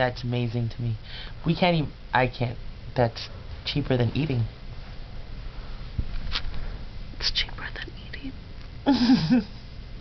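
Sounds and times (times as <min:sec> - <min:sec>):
person whispering: 0:07.2 - 0:08.4.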